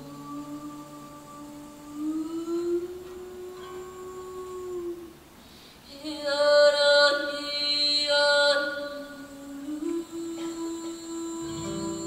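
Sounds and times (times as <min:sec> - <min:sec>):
woman singing long held notes: 0:00.0 - 0:05.2, 0:05.9 - 0:12.0.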